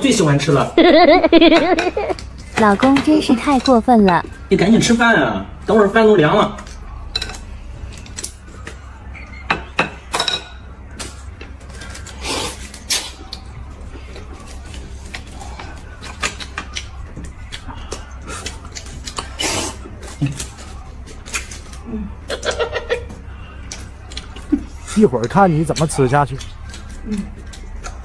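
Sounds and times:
slurping noodles: 0:12.2 - 0:13.1, 0:19.3 - 0:19.8.

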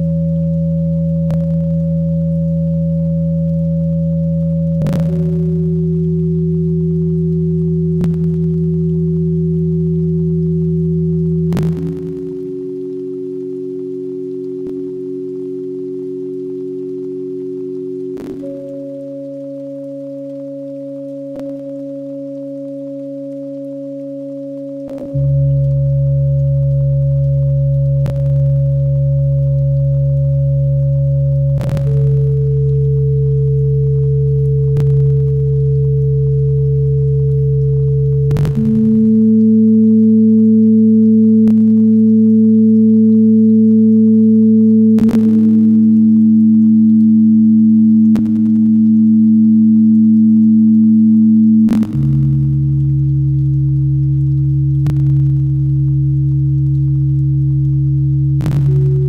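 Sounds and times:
ambient electronic music: 0:00.0 - 0:59.0.

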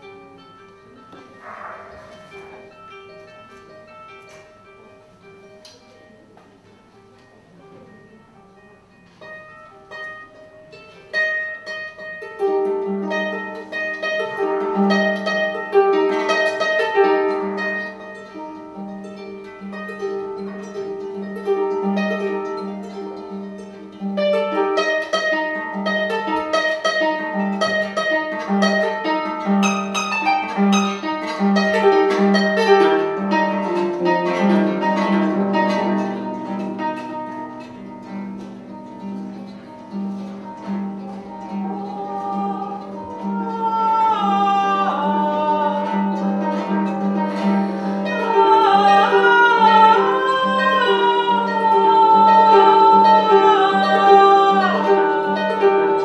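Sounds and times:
harp playing: 0:00.0 - 0:56.0
woman singing: 0:41.2 - 0:46.9, 0:48.0 - 0:56.0.

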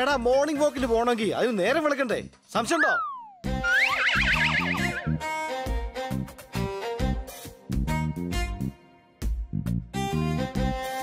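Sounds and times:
cartoon falling pitch slide: 0:02.8 - 0:05.3
high wavering melody: 0:02.8 - 0:05.5
plucked bass notes: 0:04.5 - 0:05.3.

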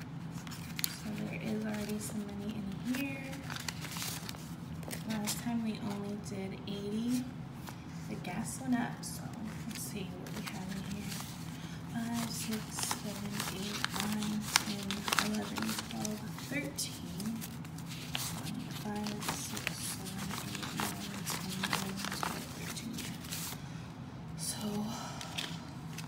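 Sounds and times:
banknotes rustling: 0:00.0 - 0:06.2, 0:09.1 - 0:23.6
person talking: 0:01.0 - 0:03.5, 0:05.0 - 0:07.3, 0:08.1 - 0:11.3, 0:11.9 - 0:17.6, 0:18.3 - 0:23.3.

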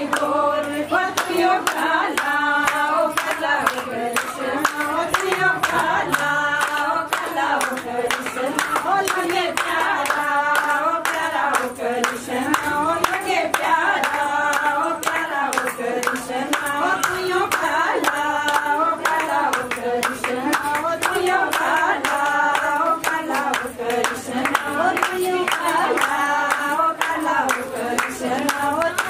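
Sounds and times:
rhythmic hand clapping: 0:00.0 - 0:29.0
women singing devotional song: 0:00.0 - 0:29.0.

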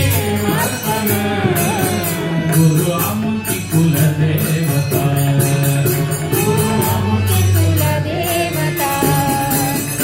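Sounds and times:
jingling percussion: 0:00.0 - 0:10.0.

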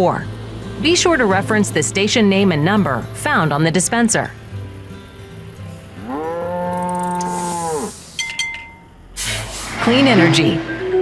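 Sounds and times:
cow mooing: 0:06.0 - 0:08.1.

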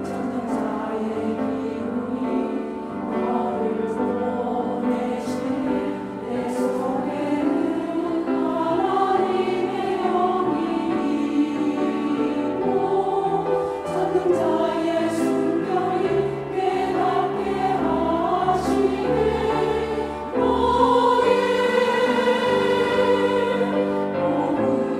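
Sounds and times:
women's choir singing a hymn: 0:00.0 - 0:24.9.

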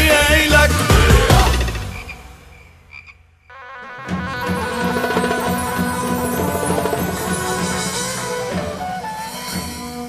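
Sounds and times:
high frog croaks: 0:01.9 - 0:03.6.

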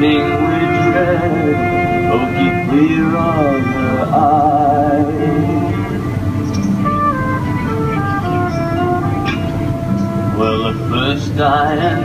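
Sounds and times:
folk band playing: 0:00.0 - 0:12.0
low background hum: 0:00.0 - 0:12.0.

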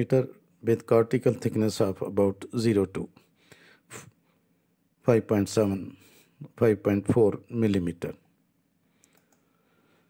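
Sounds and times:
faint short clicks: 0:09.0 - 0:09.5.

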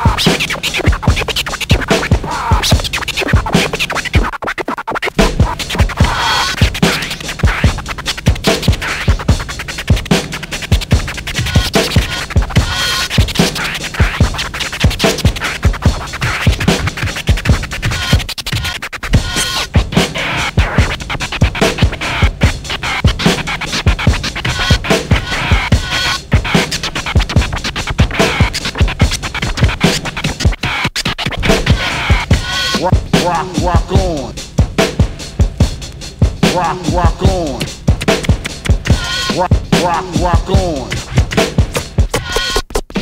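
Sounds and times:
steady drum beat: 0:00.0 - 0:43.0
turntable scratching: 0:00.0 - 0:43.0.

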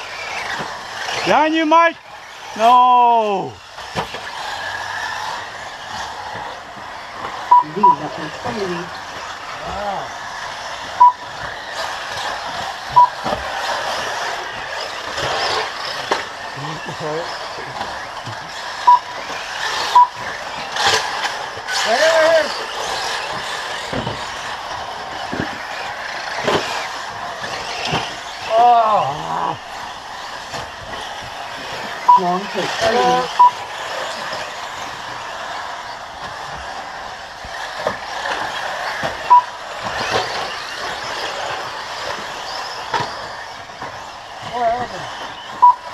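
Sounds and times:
rc buggies racing: 0:00.0 - 0:45.9
short electronic beeps: 0:07.5 - 0:08.1, 0:11.0 - 0:11.2, 0:12.9 - 0:13.2, 0:18.8 - 0:19.2, 0:19.9 - 0:20.2, 0:32.1 - 0:33.6, 0:39.3 - 0:39.5, 0:45.6 - 0:45.8.

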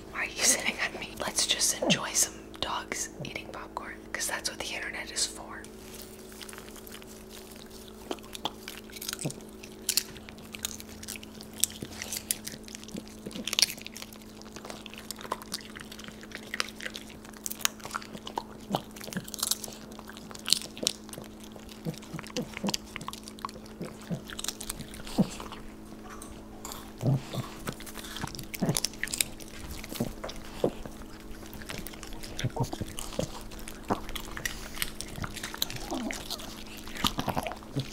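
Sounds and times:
dogs crunching popcorn: 0:00.0 - 0:37.9
steady low hum: 0:00.0 - 0:37.9.

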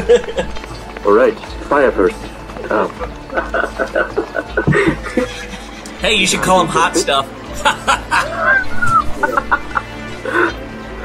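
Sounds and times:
cackling laughter: 0:00.0 - 0:00.6, 0:02.7 - 0:10.6
background music: 0:00.0 - 0:11.0.

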